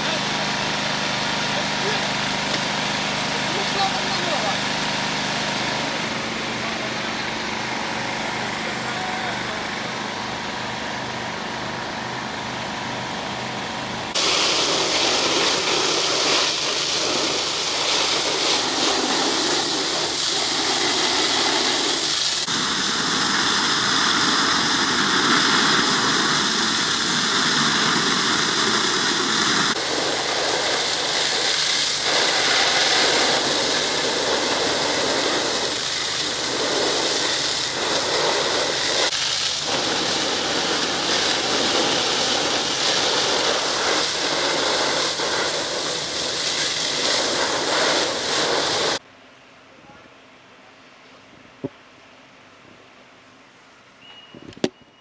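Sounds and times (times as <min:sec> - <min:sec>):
voices: 0:00.0 - 0:10.4
diesel engine idling: 0:00.0 - 0:17.9
fire hoses spraying water: 0:00.0 - 0:49.0.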